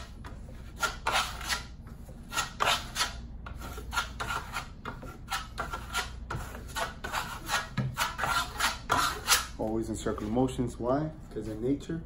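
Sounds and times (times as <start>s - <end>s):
trowel scraping plaster: 0.0s - 9.6s.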